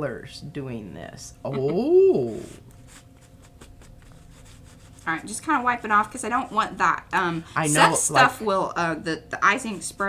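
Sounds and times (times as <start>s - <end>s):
paper towel rubbing on paper: 2.3s - 6.6s.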